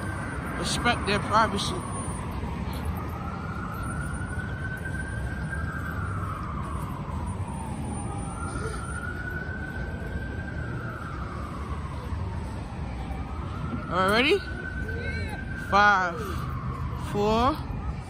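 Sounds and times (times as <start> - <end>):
emergency siren wailing: 0.0 - 18.0
low rumble of street traffic: 0.0 - 18.0.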